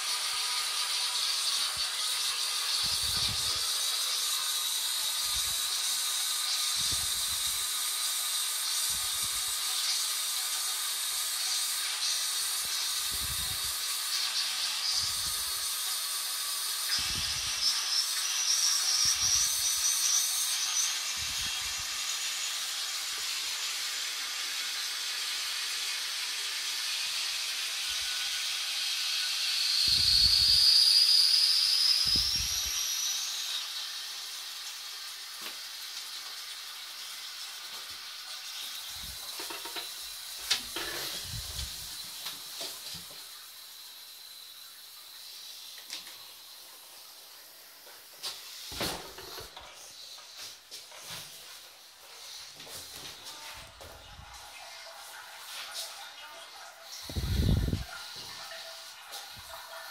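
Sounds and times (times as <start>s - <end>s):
toilet cistern refilling hiss: 0.0s - 59.9s
rising whistle of valve: 29.1s - 33.8s.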